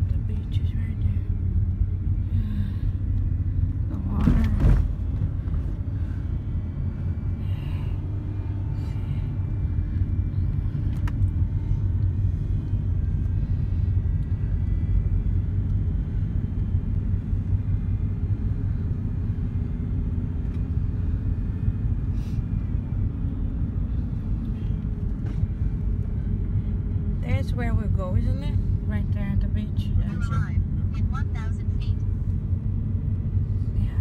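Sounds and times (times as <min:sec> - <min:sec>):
car driving rumble from inside: 0:00.0 - 0:34.0.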